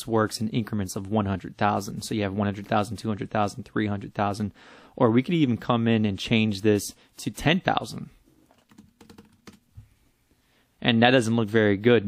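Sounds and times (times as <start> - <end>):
faint computer keyboard keystrokes: 8.5 - 9.7.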